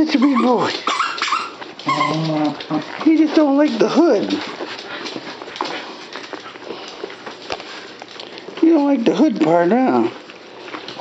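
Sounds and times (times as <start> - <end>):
puppy whining: 0.0 - 7.3.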